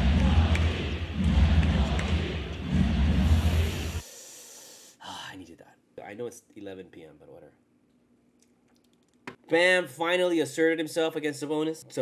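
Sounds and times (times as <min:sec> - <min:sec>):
heavy pulsing bass: 0:00.0 - 0:04.0.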